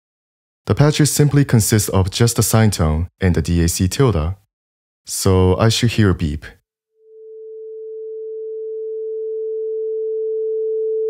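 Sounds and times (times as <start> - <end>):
sine-wave beep: 7.1 - 11.0.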